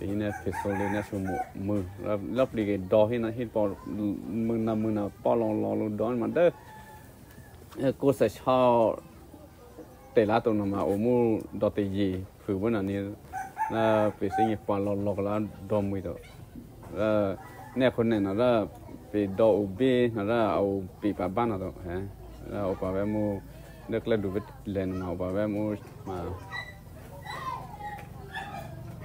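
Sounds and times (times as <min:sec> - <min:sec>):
man talking: 0:00.0 - 0:06.6, 0:10.2 - 0:16.2, 0:16.9 - 0:26.4
rooster crowing: 0:00.2 - 0:02.1, 0:06.3 - 0:07.7, 0:13.3 - 0:14.6, 0:17.4 - 0:18.1.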